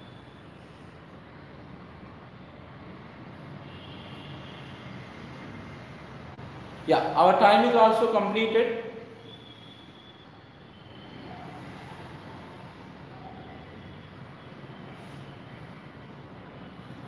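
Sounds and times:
steady background noise: 0.0 - 17.0.

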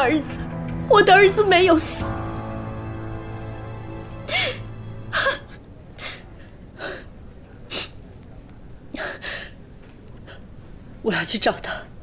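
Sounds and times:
soft background music: 0.0 - 6.8
woman sobbing: 4.3 - 7.1.

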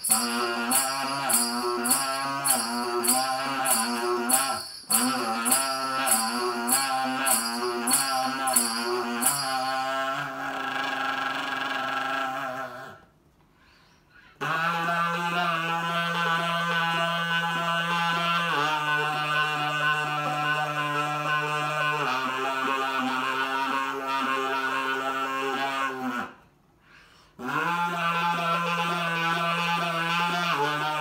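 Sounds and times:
buzzy saxophone notes: 0.0 - 13.0, 14.4 - 26.4, 27.4 - 31.0.

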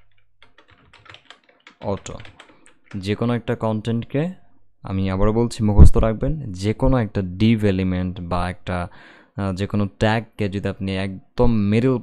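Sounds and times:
keyboard typing: 0.0 - 3.3.

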